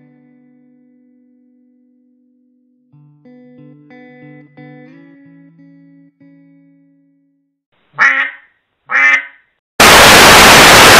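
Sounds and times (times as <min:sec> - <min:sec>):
duck quacking: 0:08.0 - 0:09.4
tv static noise: 0:09.8 - 0:10.9.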